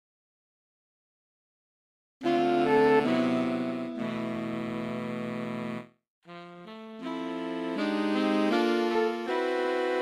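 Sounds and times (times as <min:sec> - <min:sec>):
saxophone quartet sustained chord: 0:02.2 - 0:10.0.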